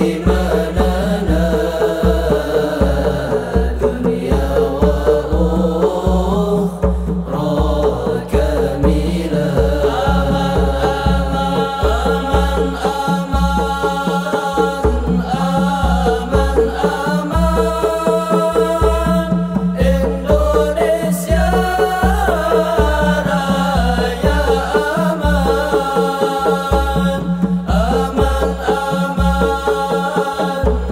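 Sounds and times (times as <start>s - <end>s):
frame drums and hand drums: 0.0s - 30.9s
men singing together: 0.0s - 30.9s.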